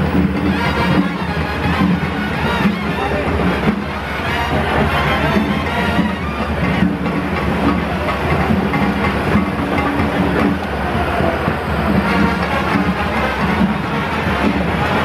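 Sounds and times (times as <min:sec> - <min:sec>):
music: 0:00.0 - 0:15.0.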